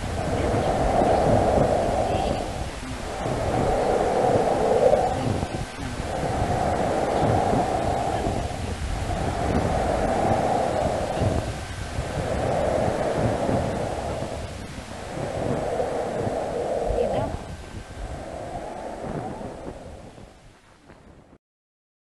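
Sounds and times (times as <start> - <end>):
rushing noise in waves: 0.0 - 21.3.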